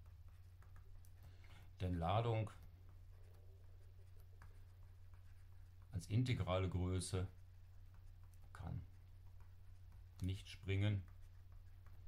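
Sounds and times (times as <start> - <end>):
low electrical hum: 0.0 - 12.0
stylus scratching on tablet: 0.0 - 12.0.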